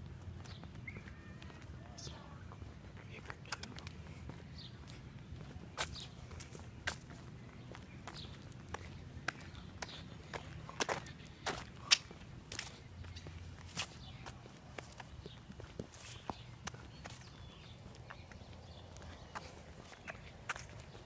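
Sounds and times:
footsteps on concrete: 0:00.0 - 0:21.0.

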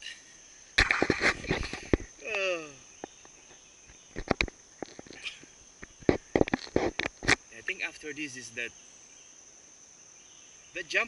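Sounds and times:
high-pitched insect drone: 0:00.0 - 0:11.0
sharp clicks and knocks: 0:04.1 - 0:05.2, 0:05.8 - 0:07.4.

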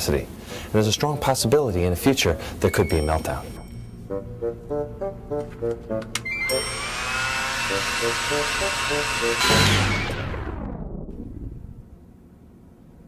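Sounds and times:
light rhythmic music: 0:00.4 - 0:07.2
hair dryer whining: 0:06.2 - 0:10.3.

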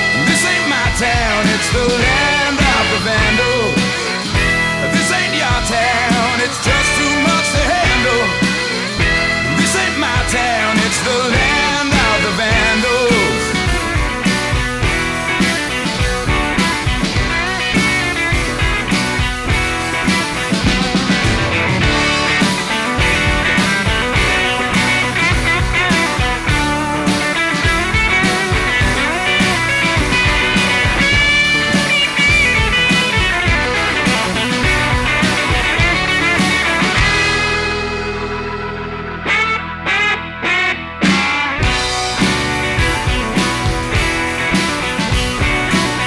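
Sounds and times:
overdriven electric guitar solo: 0:00.0 - 0:46.0
rock band backing track: 0:00.0 - 0:46.0.

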